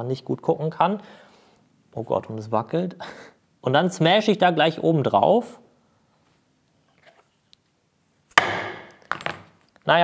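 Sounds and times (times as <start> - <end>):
chisel strike into wood: 8.4 - 9.4.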